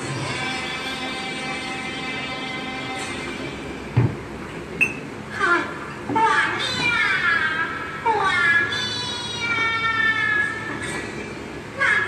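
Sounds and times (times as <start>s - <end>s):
childlike voice calling out: 5.4s - 10.9s, 11.8s - 12.0s.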